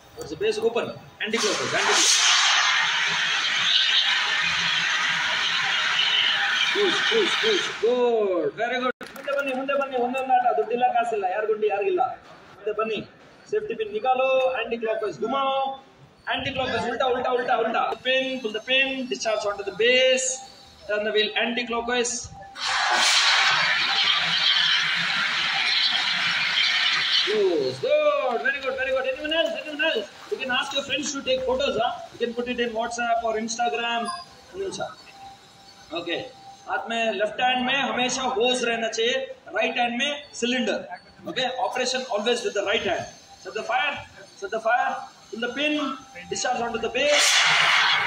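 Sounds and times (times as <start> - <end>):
fire extinguisher gas hissing: 1.4 - 7.9, 22.6 - 27.7, 47.1 - 48.0.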